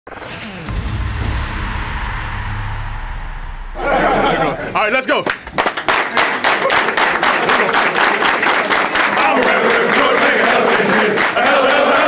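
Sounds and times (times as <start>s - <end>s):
low rumble and whoosh effect: 0.1s - 5.0s
men shouting and cheering: 3.8s - 5.2s, 6.4s - 12.0s.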